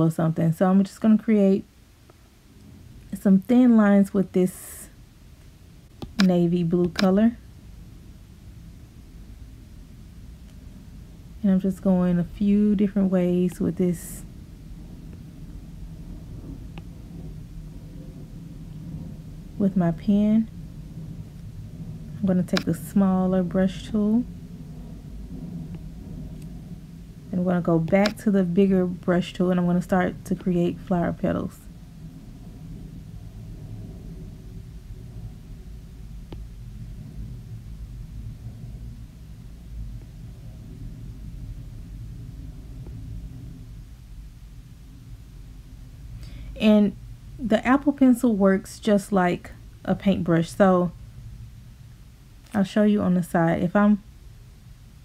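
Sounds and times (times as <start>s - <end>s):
low room rumble: 0.0s - 55.0s.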